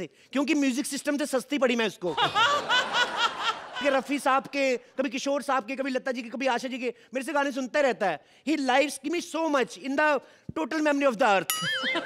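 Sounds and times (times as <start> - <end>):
audience laughing: 2.1 - 4.3.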